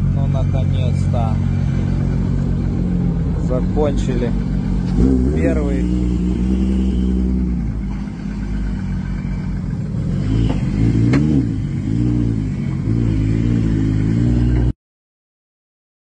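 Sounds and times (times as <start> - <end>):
car engine running: 0.0 - 14.7
engine throttle blips: 0.0 - 14.7.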